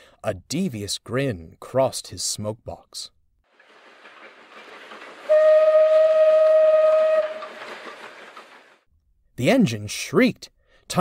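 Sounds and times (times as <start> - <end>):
steam hiss: 3.6 - 6.2, 6.8 - 8.8
steam locomotive whistle blast: 5.3 - 7.7.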